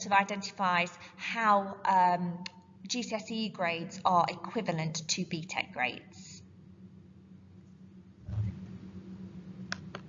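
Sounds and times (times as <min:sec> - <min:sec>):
steady low hum: 0:00.0 - 0:10.0
short low thump: 0:08.2 - 0:08.6.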